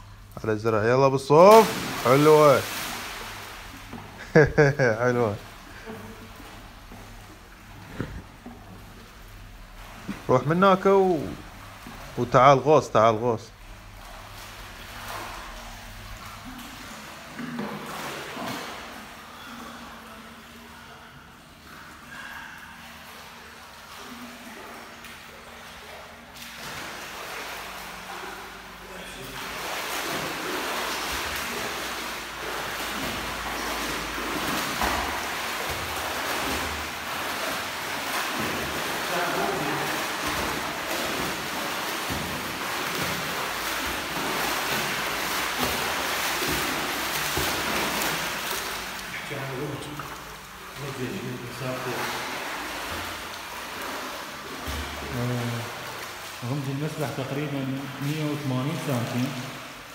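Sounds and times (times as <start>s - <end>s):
water splashing in a pool: 0.0s - 59.9s.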